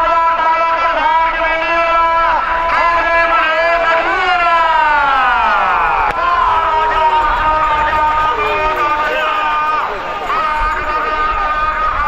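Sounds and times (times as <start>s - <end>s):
man calling in drawn-out notes: 0.0s - 12.0s.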